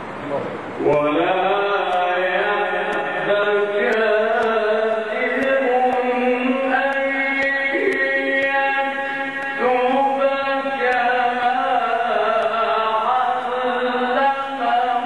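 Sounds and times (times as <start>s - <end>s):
man chanting into a microphone: 0.8s - 15.0s.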